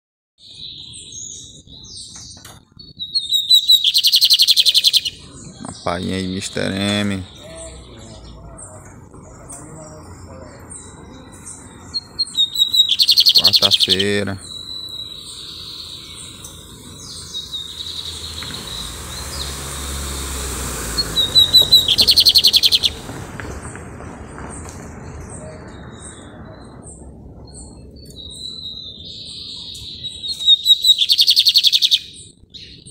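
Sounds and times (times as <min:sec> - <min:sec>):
bird singing: 0:00.4 - 0:32.9.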